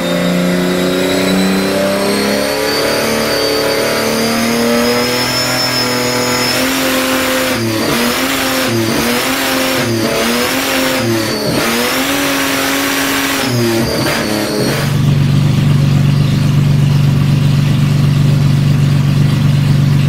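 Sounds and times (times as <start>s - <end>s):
engine revving on a dyno: 0.0s - 15.7s.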